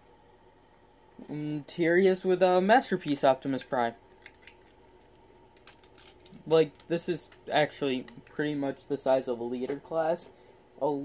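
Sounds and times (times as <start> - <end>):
plastic figures clicking: 4.2 - 8.4.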